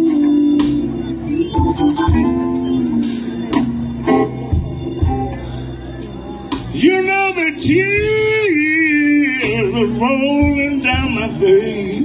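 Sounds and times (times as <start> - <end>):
sparse band backing: 0.0 - 12.0
man singing blues: 6.7 - 12.0.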